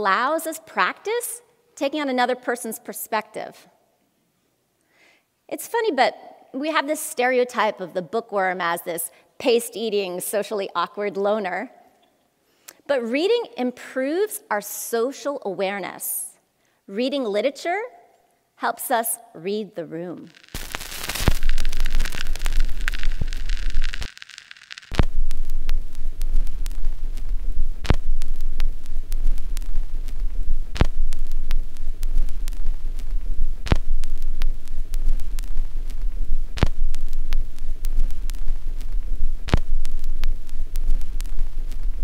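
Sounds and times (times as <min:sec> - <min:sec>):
hissing rush of noise: 0:20.3 - 0:42.0
deep bass drone: 0:25.0 - 0:42.0.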